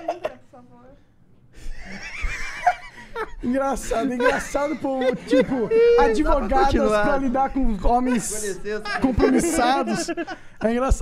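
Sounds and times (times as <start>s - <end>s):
person laughing: 4.0s - 6.2s, 8.1s - 10.4s.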